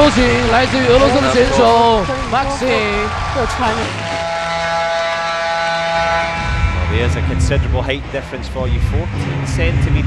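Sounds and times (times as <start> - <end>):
held synthesizer chord: 3.8 - 8.4.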